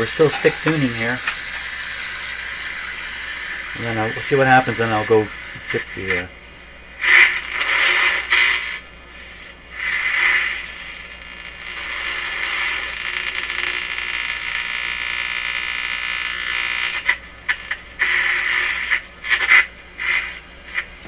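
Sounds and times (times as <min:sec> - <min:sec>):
radio static hiss: 0:00.0 - 0:21.0.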